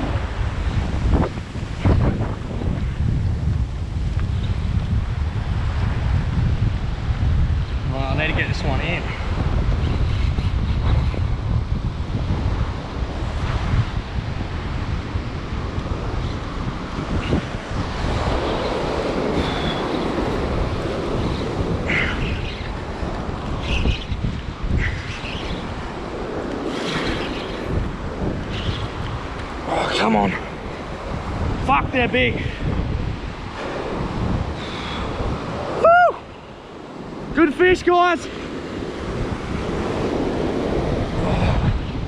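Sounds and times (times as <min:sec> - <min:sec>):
wind buffeting microphone: 0:00.0 - 0:42.0
surf breaking on beach: 0:10.8 - 0:42.0.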